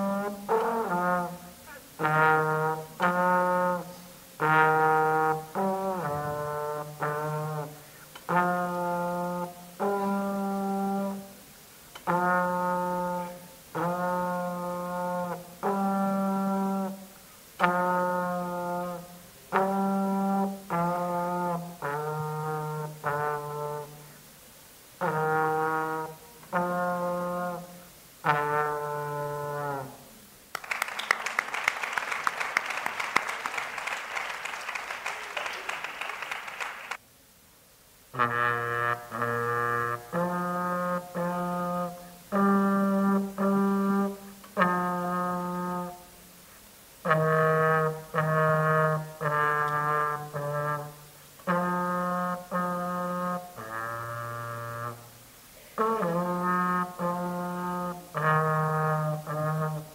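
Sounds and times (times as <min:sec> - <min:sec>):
trombone playing held notes: 0:00.0 - 0:24.3, 0:25.0 - 0:30.2, 0:38.1 - 0:46.4, 0:47.0 - 0:59.9
dense crackling noise: 0:30.5 - 0:37.0.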